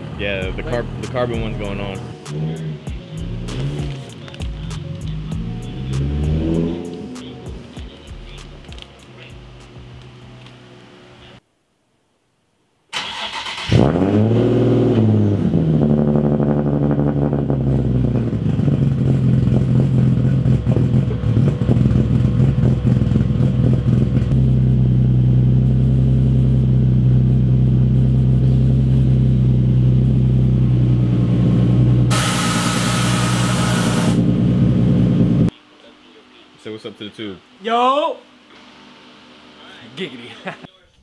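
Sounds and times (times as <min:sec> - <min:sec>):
car engine idling: 0:00.0 - 0:11.4, 0:17.1 - 0:35.5
loud hiss: 0:32.1 - 0:34.2.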